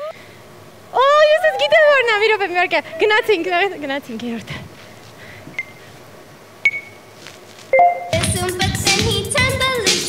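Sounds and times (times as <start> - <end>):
long beep with low tones: 6.6 - 7.0, 7.8 - 8.2
short high electronic beeps: 6.6 - 7.0, 7.7 - 8.2.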